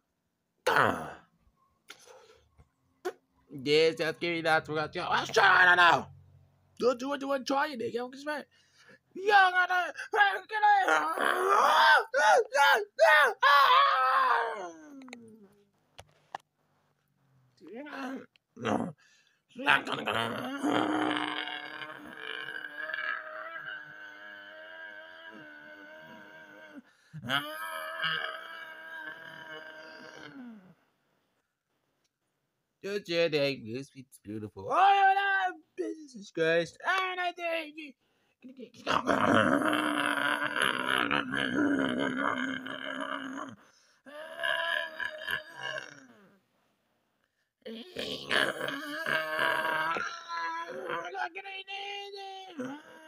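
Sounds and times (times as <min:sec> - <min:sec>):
person vocalizing: 0:00.6 - 0:01.3, 0:10.7 - 0:13.4, 0:17.9 - 0:19.0, 0:19.6 - 0:30.7, 0:38.8 - 0:46.4, 0:47.7 - 0:51.4, 0:52.4 - 0:53.0
person moaning wails: 0:09.3 - 0:15.5, 0:19.7 - 0:30.7, 0:38.8 - 0:46.3, 0:47.7 - 0:51.4, 0:52.4 - 0:53.0.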